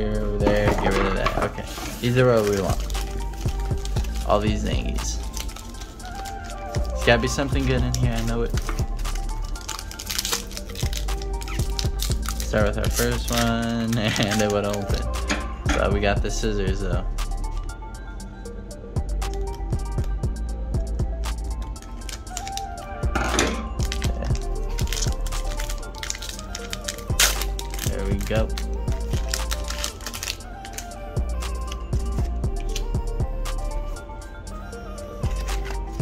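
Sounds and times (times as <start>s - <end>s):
background music with sustained notes: 0.0s - 36.0s
foil wrapper crinkling and tearing: 0.5s - 15.2s, 21.7s - 31.0s, 35.3s - 36.0s.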